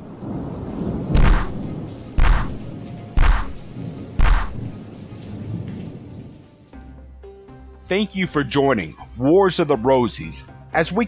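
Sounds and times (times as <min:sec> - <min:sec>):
thunder rumble: 0:00.0 - 0:06.5
rain-like hiss: 0:00.0 - 0:07.1.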